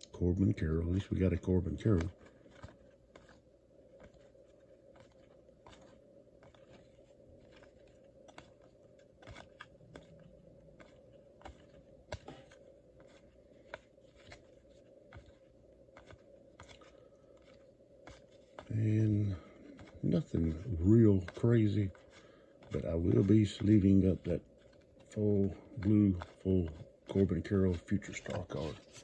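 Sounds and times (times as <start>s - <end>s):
faint steady hum: 0.0s - 29.0s
paper cards flicking: 0.0s - 29.0s.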